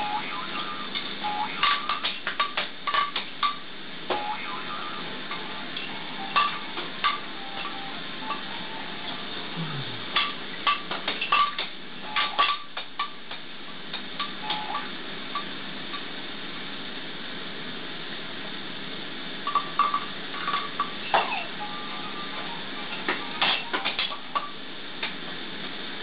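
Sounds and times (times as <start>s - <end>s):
steady hiss: 0.0s - 26.0s
plastic toys clicking and clacking: 1.0s - 4.2s, 22.9s - 24.4s.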